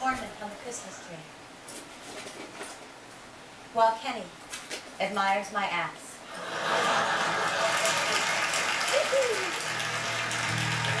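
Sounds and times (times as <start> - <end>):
studio audience laughing and applauding: 6.3 - 11.0.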